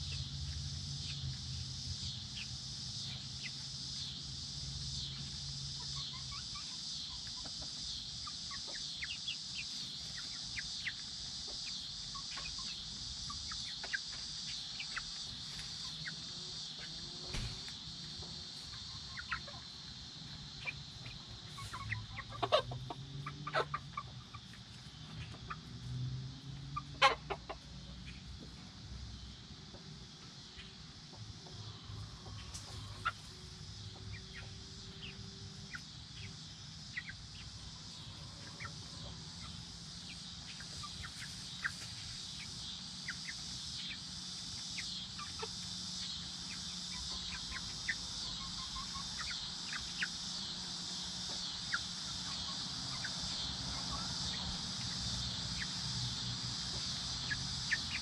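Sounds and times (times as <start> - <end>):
chickens clucking and peeping: 0.0 - 58.0
high insect drone: 0.0 - 58.0.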